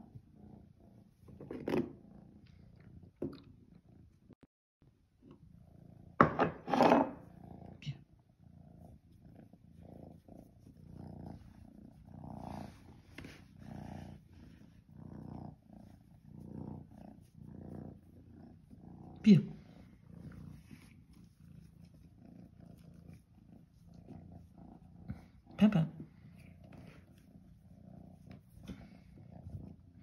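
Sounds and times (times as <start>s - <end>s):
cat purring: 0.0s - 4.4s, 5.2s - 30.0s.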